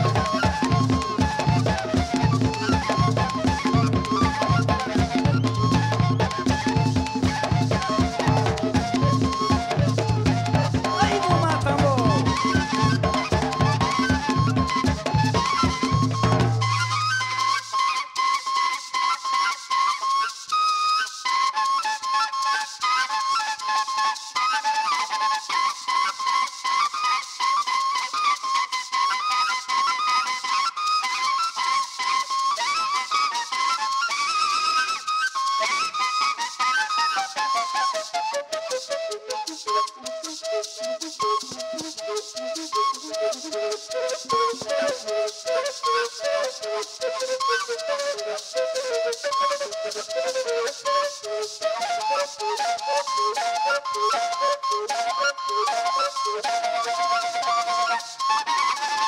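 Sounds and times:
duct flutes playing melody: 0:00.0 - 0:59.0
shaken maraca: 0:00.0 - 0:59.0.

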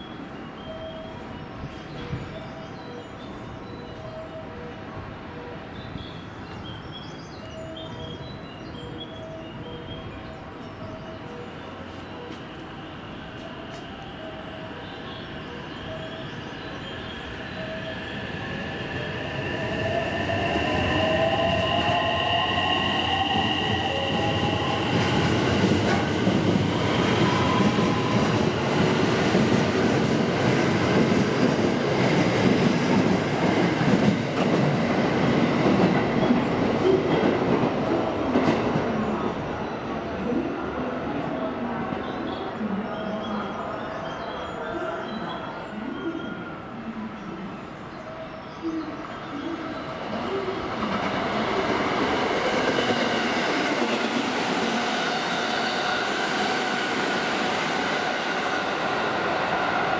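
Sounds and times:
train rumble: 0:07.6 - 0:42.8.

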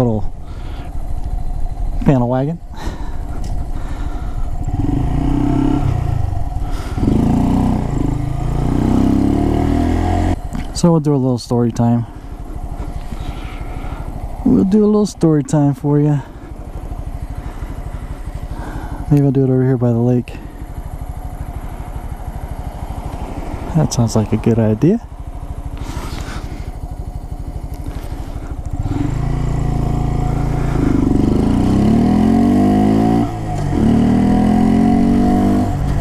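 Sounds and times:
motorcycle engine accelerating: 0:00.0 - 0:36.0
motorcycle engine putter: 0:03.3 - 0:03.6.

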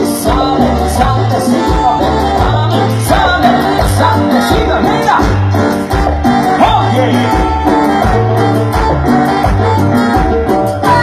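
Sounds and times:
bass line: 0:00.0 - 0:11.0
lead singer: 0:00.0 - 0:11.0
live band playing latin dance music: 0:00.0 - 0:11.0.

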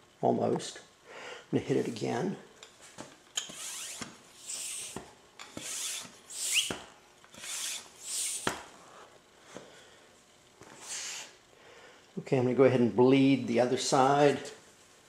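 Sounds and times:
hand pump hissing and clicking: 0:03.4 - 0:08.6.

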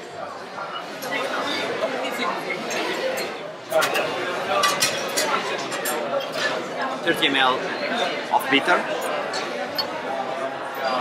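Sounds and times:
bar chatter: 0:00.0 - 0:11.0.

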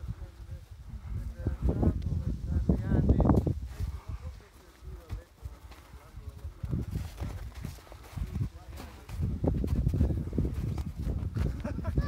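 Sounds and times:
wind on microphone: 0:00.0 - 0:12.0
footsteps crunching on rock: 0:05.0 - 0:11.6.

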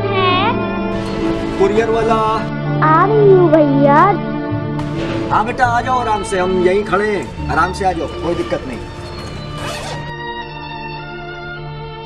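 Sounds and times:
background music: 0:00.0 - 0:12.0
bag zipper pulled open: 0:08.9 - 0:10.1.

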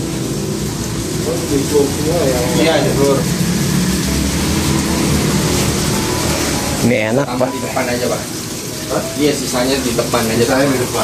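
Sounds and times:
rush of outdoor noise: 0:00.0 - 0:10.2.

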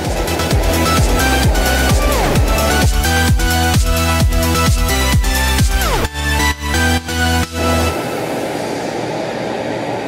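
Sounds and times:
static-like rushing noise: 0:00.0 - 0:04.9, 0:07.5 - 0:10.0.

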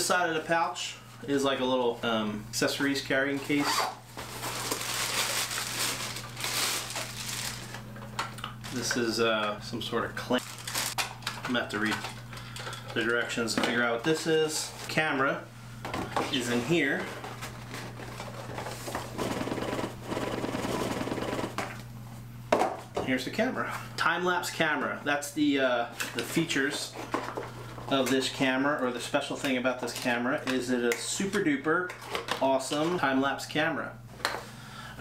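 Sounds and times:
packaging rustling and crinkling: 0:03.8 - 0:08.0, 0:10.4 - 0:12.5.

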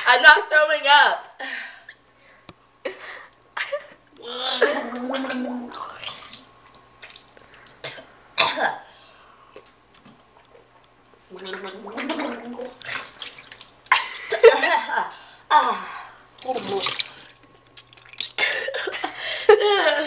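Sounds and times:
woman gargling water: 0:04.2 - 0:06.5, 0:11.3 - 0:13.4, 0:16.4 - 0:18.7
spitting into sink: 0:04.7 - 0:08.1, 0:11.4 - 0:13.7, 0:16.4 - 0:18.7.

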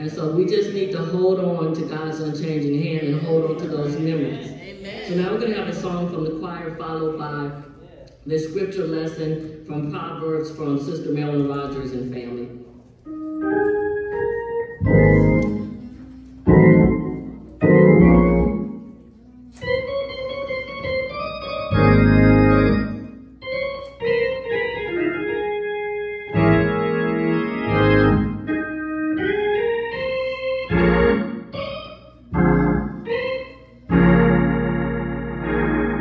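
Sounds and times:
organ playing chords: 0:12.9 - 0:36.0.

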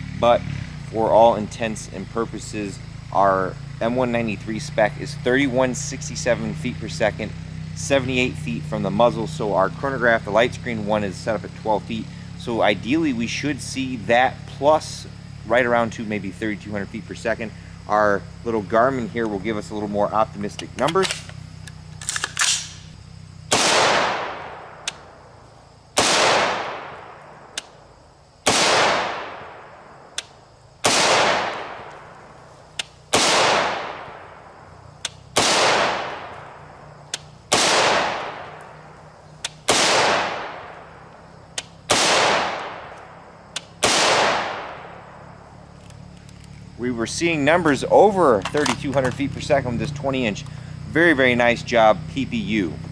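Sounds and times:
small sharp ticks: 0:20.4 - 0:23.0, 0:24.8 - 0:25.2, 0:27.5 - 0:27.8, 0:30.1 - 0:30.4, 0:31.5 - 0:33.0, 0:35.0 - 0:35.3, 0:36.3 - 0:37.4, 0:38.2 - 0:39.7, 0:41.5 - 0:41.8, 0:42.6 - 0:43.8, 0:45.7 - 0:46.7, 0:48.4 - 0:50.8
rifle clicks: 0:20.7 - 0:23.0, 0:23.6 - 0:25.2, 0:30.1 - 0:34.1, 0:37.1 - 0:40.5, 0:41.5 - 0:44.8
rifle shots with echo: 0:23.5 - 0:25.2, 0:26.0 - 0:27.5, 0:28.4 - 0:29.9, 0:30.8 - 0:32.3, 0:33.1 - 0:34.6, 0:35.3 - 0:36.8, 0:37.5 - 0:38.7, 0:39.6 - 0:40.9, 0:41.8 - 0:43.0, 0:43.7 - 0:45.3.

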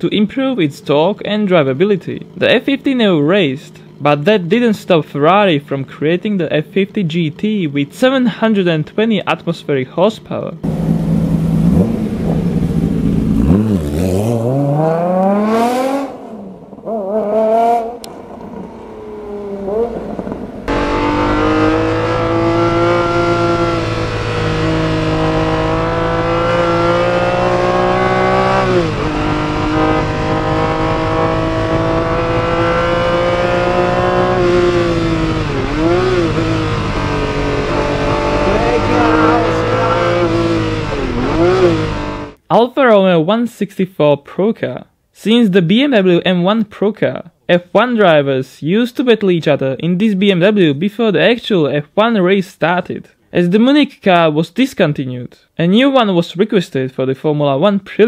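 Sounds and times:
sports car engine accelerating: 0:10.6 - 0:42.4.

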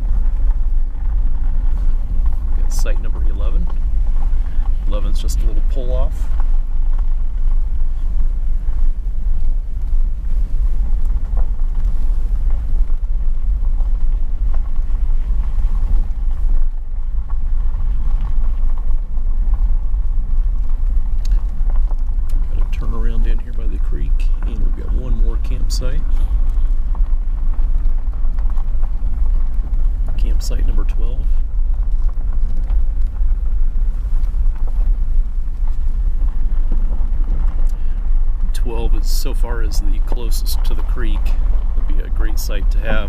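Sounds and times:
vehicle driving on gravel: 0:00.0 - 0:43.0.

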